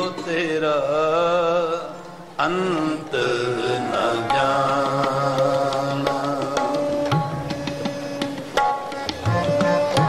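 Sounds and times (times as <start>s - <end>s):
man singing devotional chant: 0.0s - 8.9s
harmonium: 0.0s - 10.0s.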